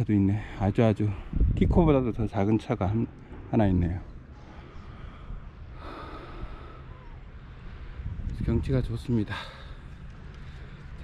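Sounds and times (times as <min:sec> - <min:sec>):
low rumbling microphone noise: 0:01.0 - 0:09.8.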